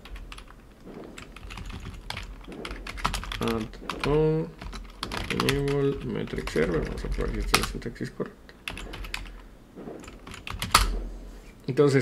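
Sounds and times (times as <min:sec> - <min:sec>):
keyboard keys clicking: 0:00.0 - 0:07.9, 0:08.7 - 0:09.4, 0:10.0 - 0:11.0.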